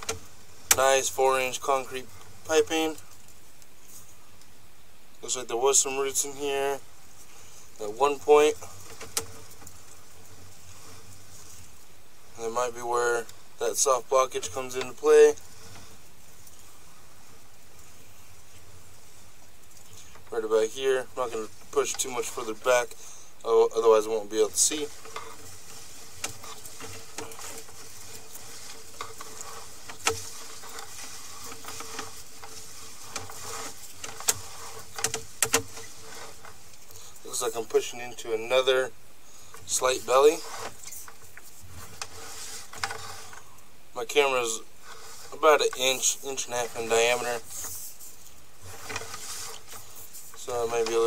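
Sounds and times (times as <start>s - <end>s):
cable clicking and knocking: 0.0s - 0.9s, 8.5s - 11.5s, 24.3s - 37.8s, 39.5s - 43.5s
faint hiss: 0.0s - 51.0s
low electrical hum: 0.0s - 51.0s.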